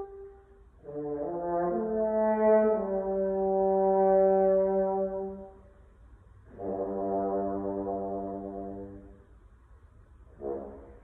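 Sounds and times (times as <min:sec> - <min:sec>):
french horn long note: 0:06.5 - 0:09.2.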